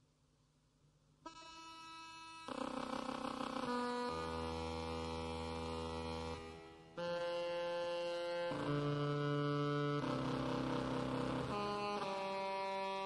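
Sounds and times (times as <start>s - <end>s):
buzzy electronic tones: 2.5s - 13.0s.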